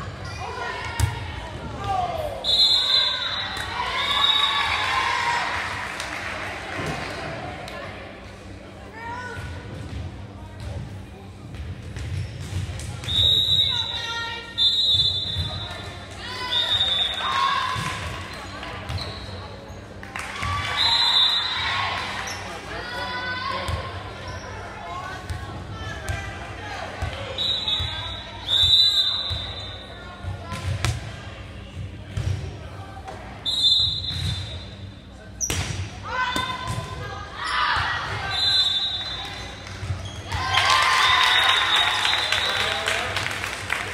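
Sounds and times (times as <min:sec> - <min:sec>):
crowd voices: 0:00.0 - 0:43.9
referee whistle blasts: 0:02.4 - 0:04.6, 0:13.1 - 0:15.7, 0:20.7 - 0:21.6, 0:27.4 - 0:29.9, 0:33.4 - 0:34.8, 0:38.2 - 0:39.3
sneakers squeaking on court: 0:18.2 - 0:20.0.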